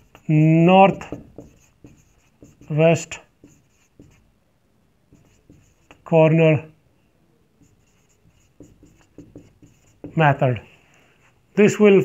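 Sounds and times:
marker writing on whiteboard: 0:00.0 - 0:04.3, 0:05.1 - 0:06.2, 0:07.6 - 0:10.6.

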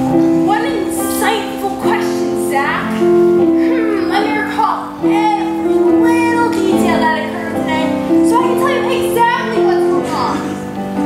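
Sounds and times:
musical accompaniment: 0:00.0 - 0:11.0.

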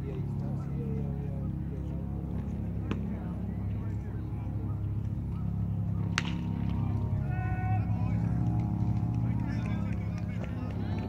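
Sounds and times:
spectators murmuring: 0:00.0 - 0:11.0
metal bat hitting ball: 0:06.1 - 0:06.8.

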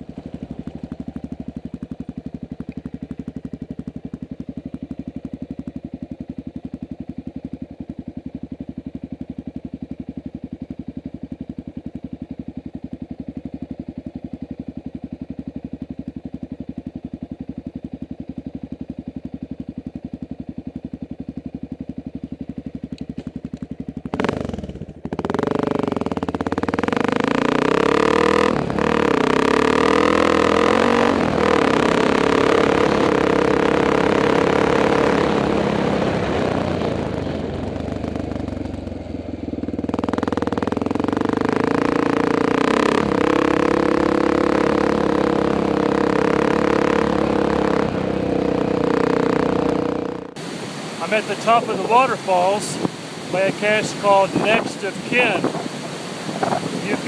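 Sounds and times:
motorcycle engine idling: 0:00.0 - 0:57.0
motorcycle riding on gravel: 0:00.0 - 0:57.0.

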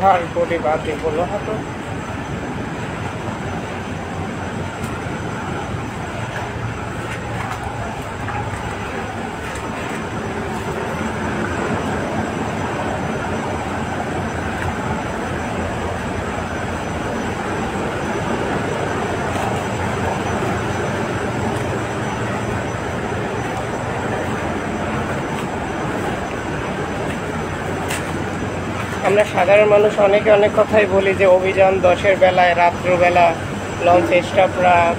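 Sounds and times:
diesel engines droning: 0:00.0 - 0:34.9.

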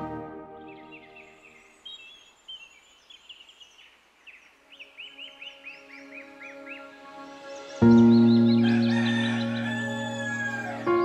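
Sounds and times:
soft music: 0:00.0 - 0:01.8, 0:04.5 - 0:11.0
songbirds chirping: 0:00.0 - 0:11.0.

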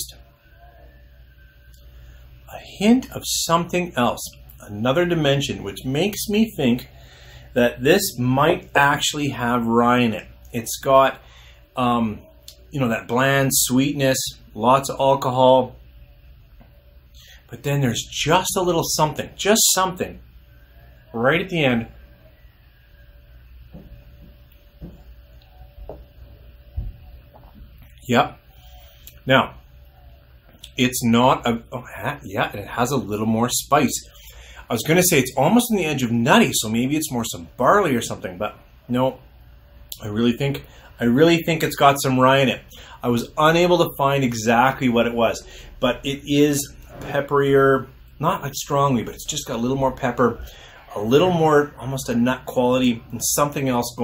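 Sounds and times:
faint low background hum: 0:00.0 - 0:54.0.

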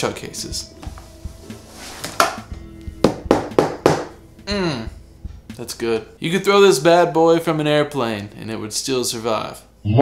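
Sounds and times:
fist knocking on padded case: 0:03.0 - 0:04.2.

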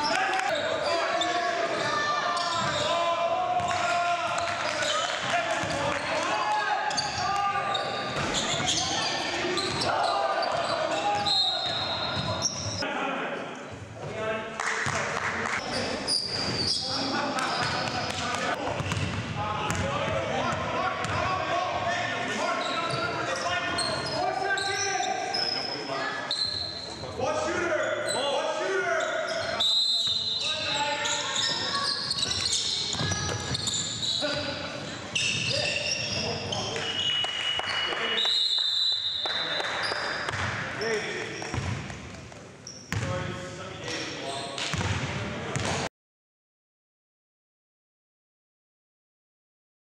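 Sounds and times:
sneakers squeaking: 0:00.0 - 0:12.8, 0:15.6 - 0:21.2, 0:22.4 - 0:28.4, 0:29.0 - 0:43.2, 0:43.8 - 0:45.8.

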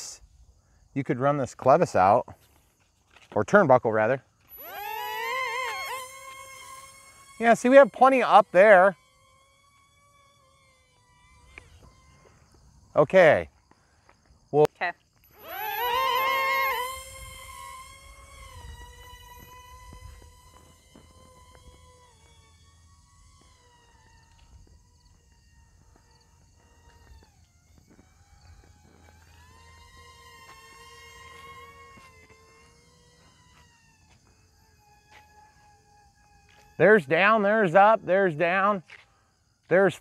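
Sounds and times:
rc jet motors whining: 0:00.0 - 0:40.0.

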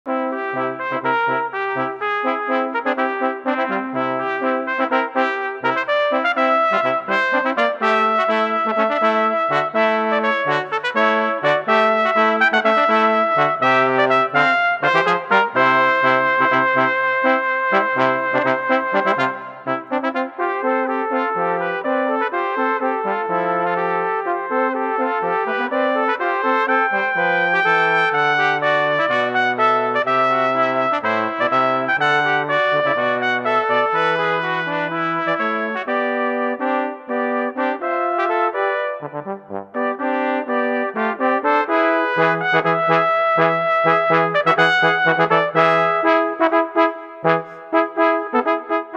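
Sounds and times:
cornets playing: 0:00.1 - 0:48.9
trombone low line: 0:00.1 - 0:48.9.

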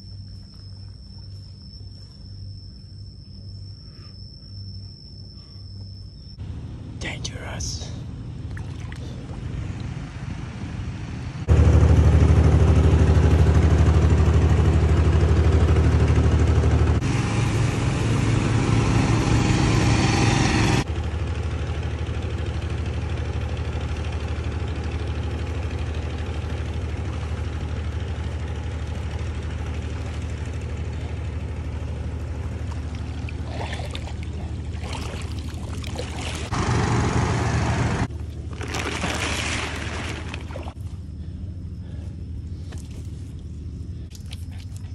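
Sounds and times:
boat engine droning: 0:00.0 - 0:44.9.

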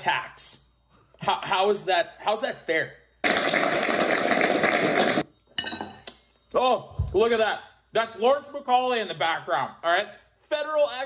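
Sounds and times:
people applauding: 0:03.2 - 0:05.2.

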